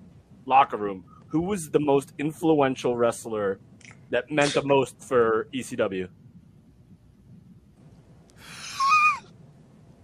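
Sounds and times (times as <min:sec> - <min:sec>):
faint low hum: 0:00.0 - 0:10.0
man's breathy exclamation: 0:08.4 - 0:09.1.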